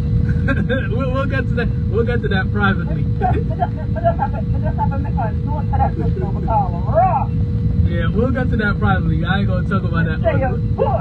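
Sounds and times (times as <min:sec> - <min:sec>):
car cabin rumble: 0:00.0 - 0:11.0
faint steady hum: 0:00.0 - 0:11.0
man talking: 0:00.6 - 0:03.4, 0:07.8 - 0:10.4.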